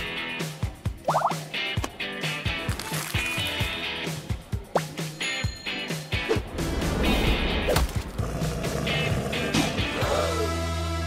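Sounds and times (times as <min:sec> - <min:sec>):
background music with a beat: 0:00.0 - 0:07.9.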